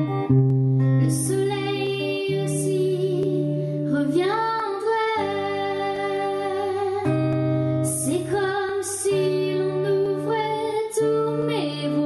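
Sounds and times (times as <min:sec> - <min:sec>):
boy singing ballad: 0:00.0 - 0:12.0
sustained electric guitar: 0:00.0 - 0:12.0.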